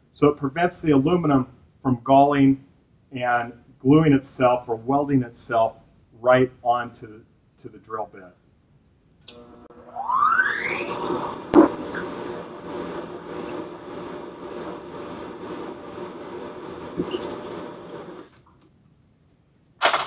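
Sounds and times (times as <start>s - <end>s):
milling machine motor whining: 9.3s - 18.4s
drill squealing in metal: 10.3s - 18.4s.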